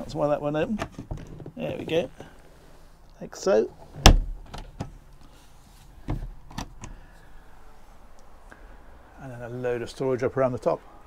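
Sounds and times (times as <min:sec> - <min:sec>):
wooden lid thumping shut: 0:04.0 - 0:04.9.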